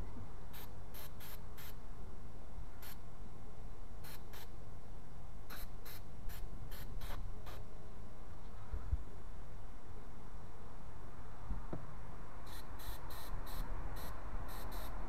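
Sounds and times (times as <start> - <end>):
aerosol can spraying hissing bursts: 0.6 - 1.7, 12.5 - 15.0.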